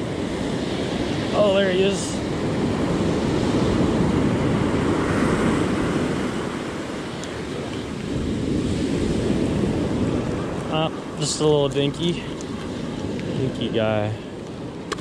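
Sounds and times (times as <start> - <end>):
ocean surf breaking: 0.0 - 15.0.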